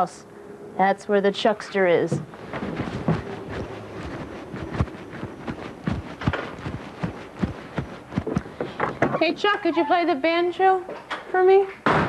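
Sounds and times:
footsteps of person running: 2.2 - 9.1.

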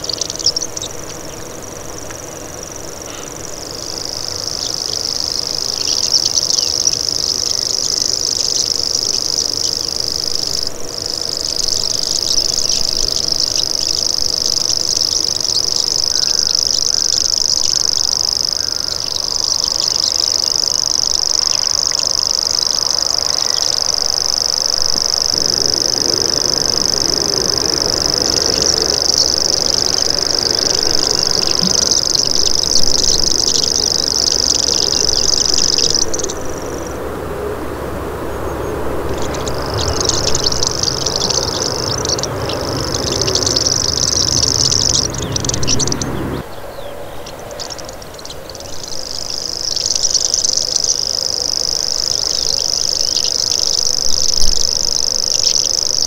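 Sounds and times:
bird reeling trill: 0.0 - 56.0.

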